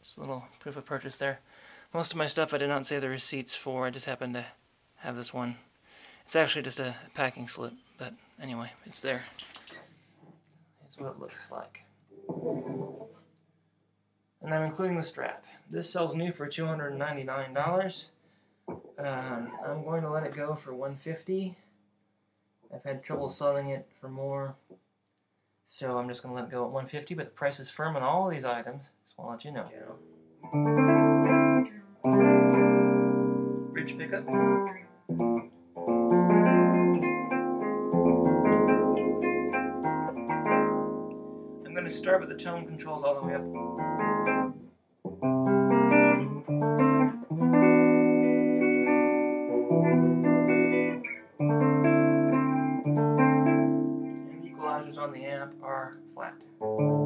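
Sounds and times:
electric guitar strings ringing: 30.4s - 44.5s.

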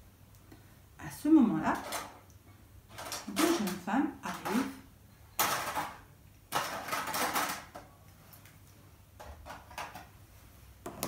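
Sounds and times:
plastic figures rustling: 2.9s - 4.8s, 5.4s - 10.1s.

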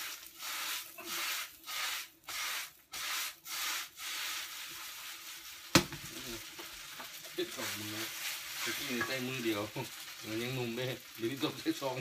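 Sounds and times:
spatula scraping in sizzling pan: 0.0s - 12.0s
spatula clanking against pan: 8.9s - 9.2s.

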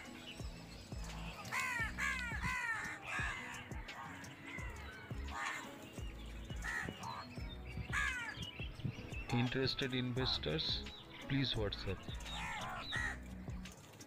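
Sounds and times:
birds calling: 0.0s - 14.0s.

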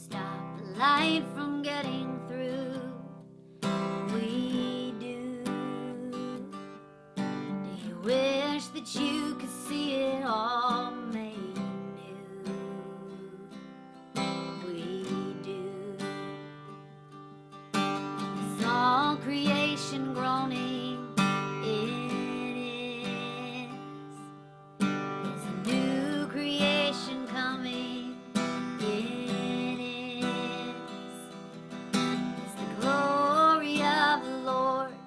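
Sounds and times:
woman singing worship song: 0.0s - 3.0s, 4.0s - 6.5s, 7.7s - 13.5s, 14.6s - 16.2s, 18.4s - 24.1s, 25.3s - 31.3s, 32.5s - 35.0s
acoustic guitar strumming: 0.0s - 35.0s.

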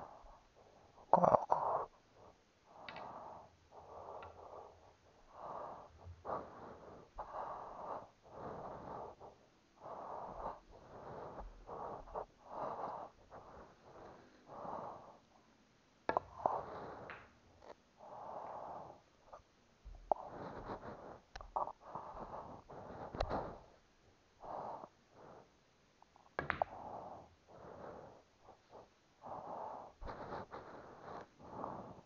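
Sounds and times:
noisy breathing: 0.0s - 25.7s, 26.5s - 32.0s.

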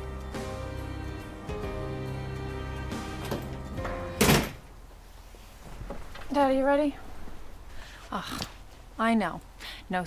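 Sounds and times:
soft background music: 0.0s - 4.6s
loud thunk: 4.2s - 4.6s.

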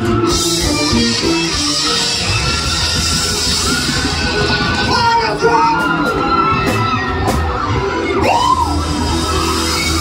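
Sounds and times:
live rock band playing: 0.0s - 10.0s.

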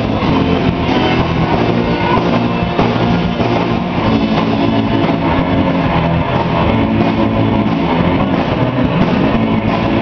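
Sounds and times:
surf rock band playing: 0.0s - 10.0s.

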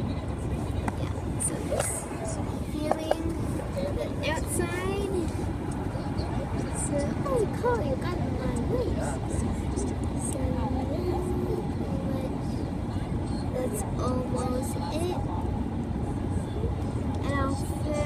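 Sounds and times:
indistinct voices talking: 0.0s - 18.0s
road and engine noise in car: 0.0s - 18.0s.

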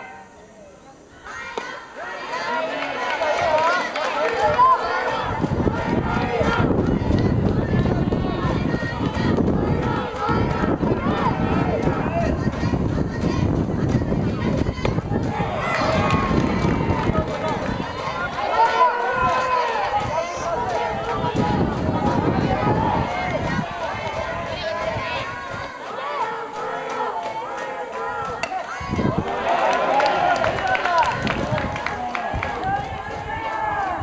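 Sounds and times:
voices shouting and calling out: 0.0s - 34.0s.

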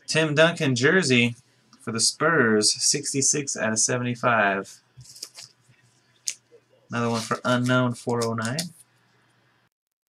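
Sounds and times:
card rustling in fingers: 5.0s - 5.6s, 7.0s - 8.8s.

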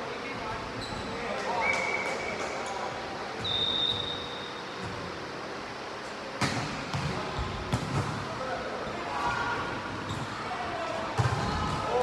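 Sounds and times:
murmur of players' voices: 0.0s - 12.0s.

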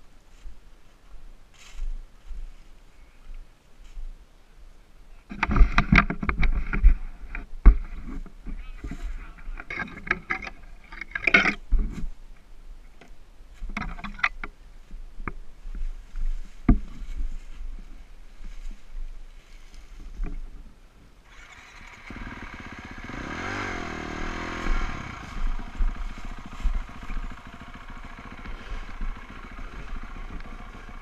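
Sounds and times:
dry leaves crunching and rustling: 23.5s - 31.0s
scraping: 23.6s - 31.0s.

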